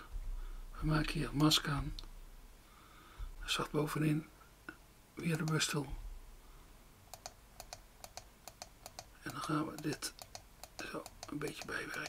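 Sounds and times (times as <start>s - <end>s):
computer mouse clicks: 7.1s - 12.0s.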